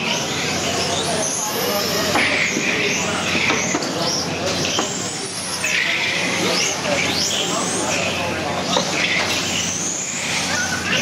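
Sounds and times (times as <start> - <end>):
din of voices: 0.0 - 11.0.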